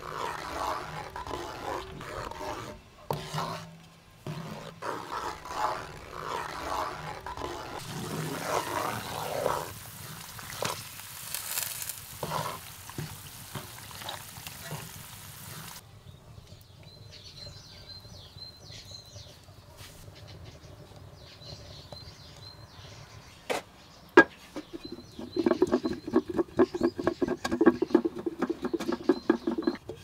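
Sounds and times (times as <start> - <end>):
wooden spoon scraping a pan: 0.0 - 15.8, 24.2 - 30.0
birds chirping: 6.4 - 30.0
gravy sizzling in a frying pan: 7.7 - 15.8.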